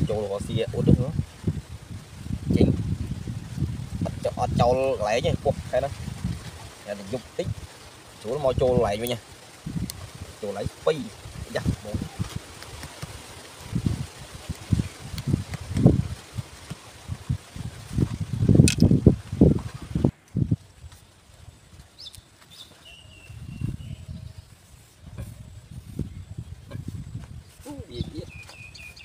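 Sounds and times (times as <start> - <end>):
faint bird chirps: 22.0 - 29.0.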